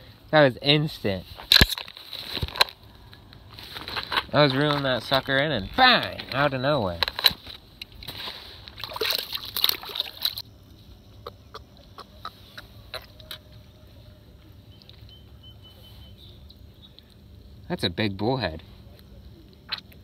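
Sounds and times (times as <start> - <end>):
fish splashing at water surface: 8.8 - 10.4.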